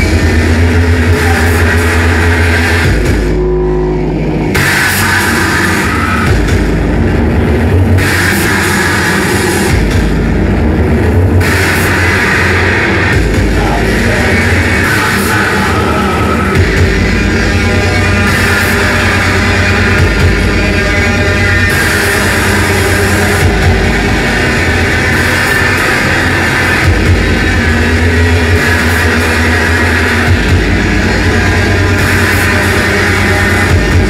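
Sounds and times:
distorted electronic noise music: 0.0 - 34.0.

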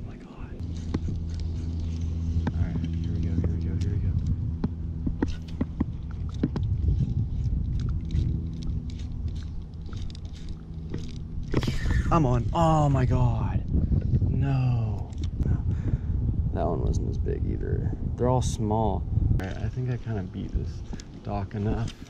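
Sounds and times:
low motor hum: 0.0 - 22.0
sharp clicks and ticks: 0.6 - 12.0.

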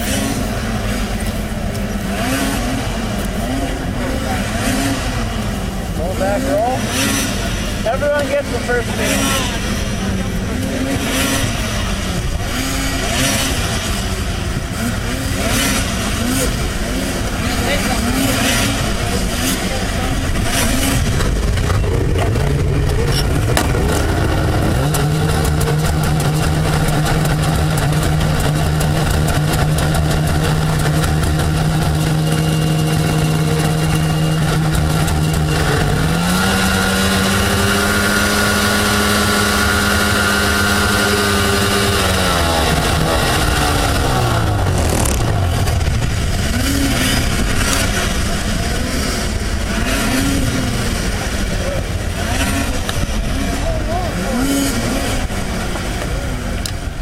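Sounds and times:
snowmobile engine revving: 0.0 - 57.0
snowmobile engines idling: 0.0 - 57.0.

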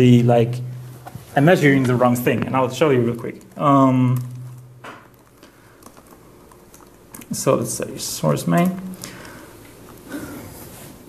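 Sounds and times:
faint keyboard clicking: 2.3 - 7.4.

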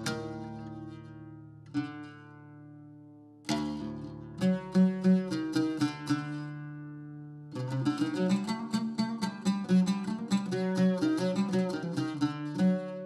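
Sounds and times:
oud plucked notes: 0.0 - 13.0.

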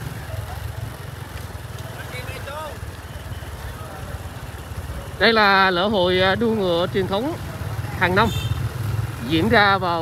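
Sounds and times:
crowd: 0.0 - 10.0
motorbike traffic rumble: 0.0 - 10.0.

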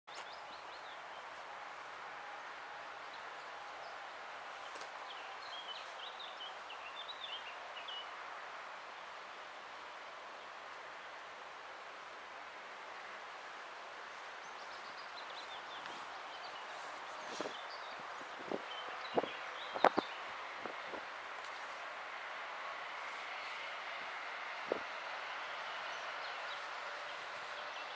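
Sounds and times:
outdoor background noise: 0.0 - 27.9
small birds chirping: 3.0 - 8.2, 13.4 - 22.2, 25.6 - 27.9.

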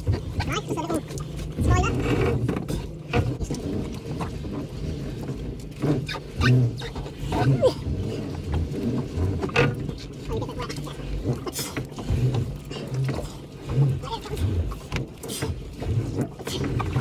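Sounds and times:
outboard motor hum: 0.0 - 17.0.

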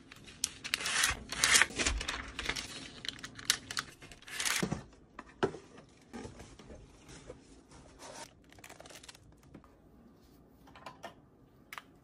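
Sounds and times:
paper rustling and crinkling: 0.0 - 4.8.

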